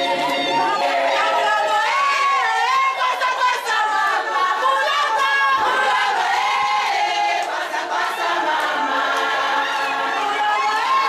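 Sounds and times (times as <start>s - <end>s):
women singing together: 0.0s - 11.0s.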